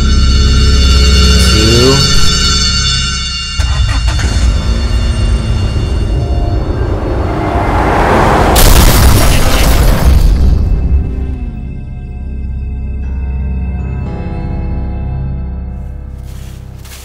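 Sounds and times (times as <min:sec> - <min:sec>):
rising noisy swell: 0:03.9 - 0:08.6
crash-like burst: 0:07.6 - 0:10.6.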